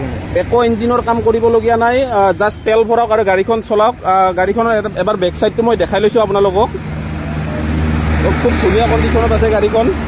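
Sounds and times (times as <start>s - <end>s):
man talking: 0.0s - 6.9s, 8.1s - 10.0s
low traffic rumble: 0.0s - 10.0s
vehicle passing: 0.0s - 10.0s.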